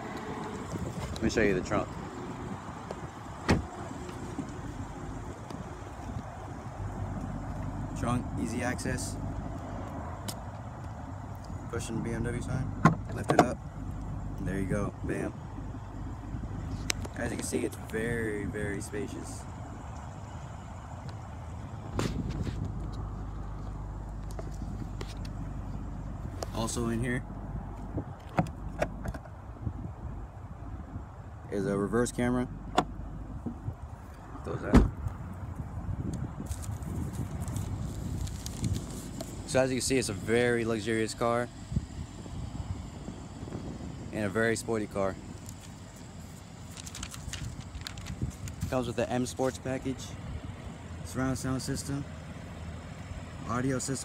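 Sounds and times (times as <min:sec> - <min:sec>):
steady low rumble: 0:00.0 - 0:54.0
heavy thump: 0:34.7 - 0:35.0.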